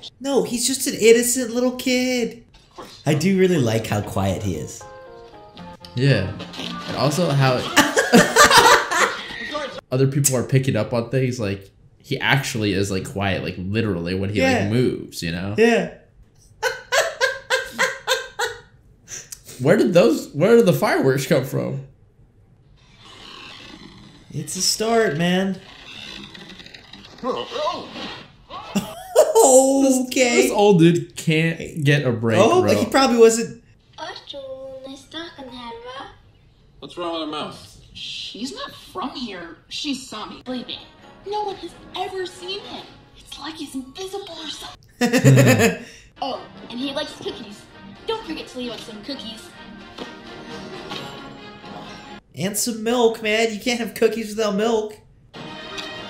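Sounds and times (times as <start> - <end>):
quiet music of held notes: 3.1 - 7.7.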